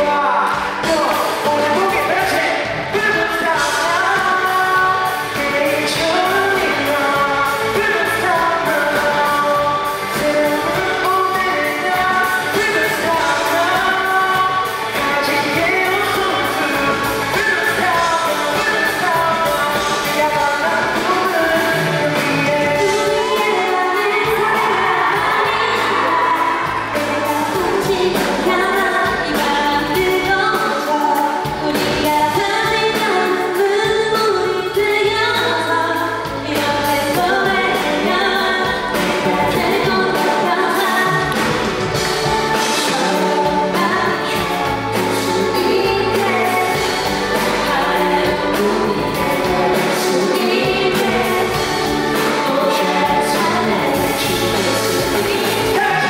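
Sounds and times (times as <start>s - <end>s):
bass: 0.0s - 56.0s
live pop band playing: 0.0s - 56.0s
woman singing into microphone: 0.0s - 56.0s.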